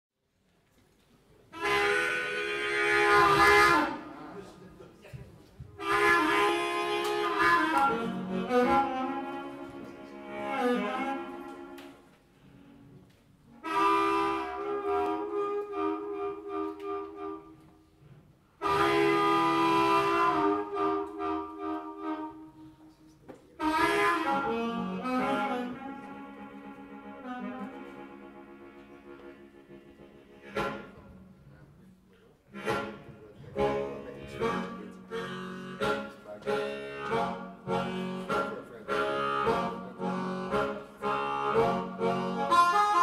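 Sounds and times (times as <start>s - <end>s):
amplified blues harmonica: 1.5s - 4.2s, 5.8s - 23.0s, 23.6s - 31.5s, 32.5s - 43.0s
harmonica wailing chord: 1.6s - 4.1s, 5.8s - 11.7s, 33.6s - 43.0s.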